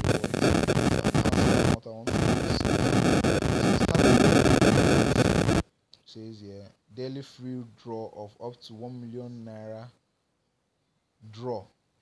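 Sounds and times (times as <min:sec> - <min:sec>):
loud harsh static noise: 0:00.0 - 0:05.7.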